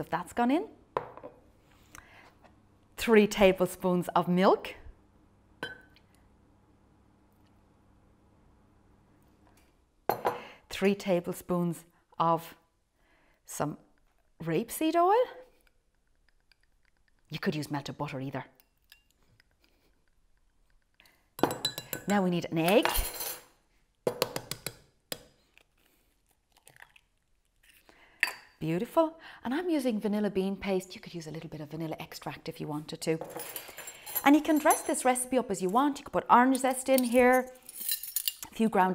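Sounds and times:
metal spoon clinking ceramic jug: 21.4 - 22.2, 36.9 - 38.5
egg knocking against hard edge: 24.1 - 25.3.

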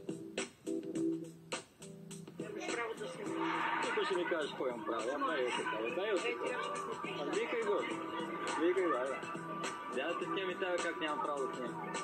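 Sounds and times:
background music: 0.0 - 12.0
person talking on television: 2.4 - 12.0.

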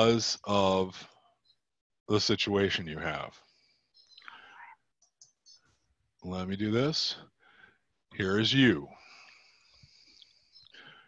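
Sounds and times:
man's whispered breath: 3.4 - 4.8, 8.9 - 11.0.

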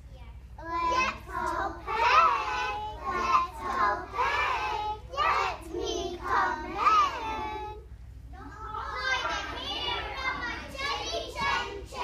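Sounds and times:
young children's voices: 0.0 - 12.0.

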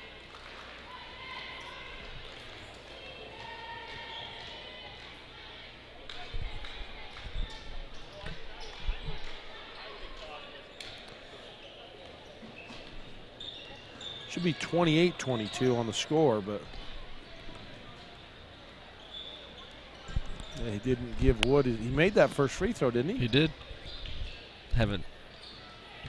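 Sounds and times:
murmur of crowd: 0.0 - 26.0.

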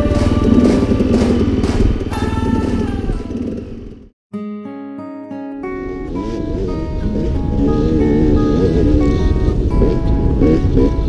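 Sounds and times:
background music: 0.0 - 2.7, 4.4 - 11.0
dirt bike engine running: 0.0 - 4.1, 6.2 - 11.0.

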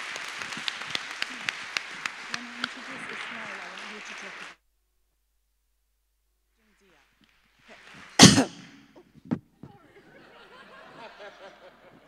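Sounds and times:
faint stage room noise: 0.0 - 12.0.

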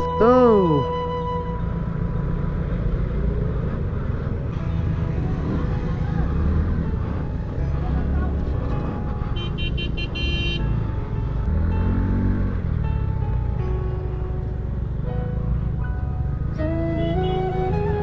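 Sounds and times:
road and traffic noise: 0.0 - 18.0
vehicle horn toots: 9.2 - 10.7.

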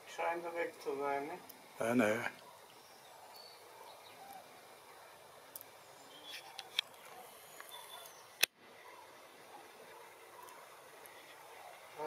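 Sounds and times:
distant crane calls: 2.1 - 12.0.

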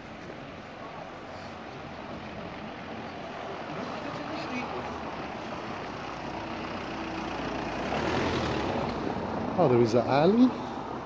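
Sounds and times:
car engine passing: 1.9 - 11.0.

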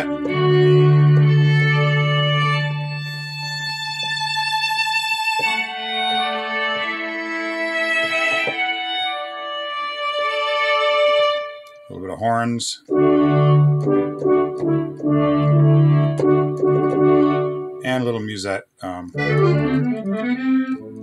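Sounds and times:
synth bowed string chords: 0.0 - 12.1, 12.9 - 18.1, 19.1 - 21.0.

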